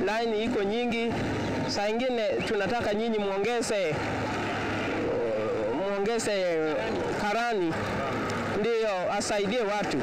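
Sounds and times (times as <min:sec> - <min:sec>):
faint crowd voices: 0:00.0 - 0:10.0
road noise: 0:00.0 - 0:10.0
vehicle engine hum: 0:00.0 - 0:10.0.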